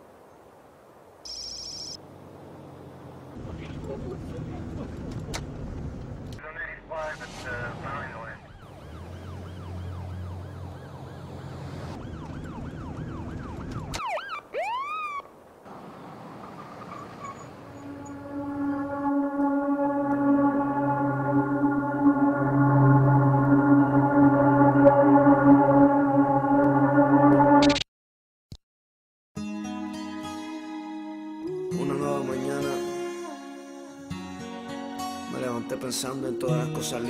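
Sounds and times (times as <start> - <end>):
low engine rumble: 2.0 - 13.7, 15.7 - 26.2
police siren yelping: 8.3 - 15.3, 16.5 - 27.1
sustained synth chord: 17.7 - 27.6.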